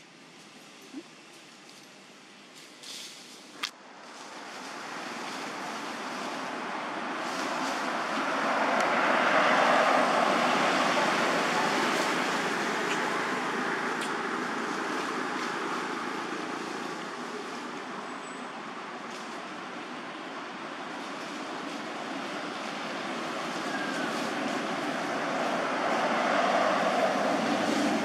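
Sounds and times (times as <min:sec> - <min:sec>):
road vehicle passing: 0:03.9 - 0:28.0.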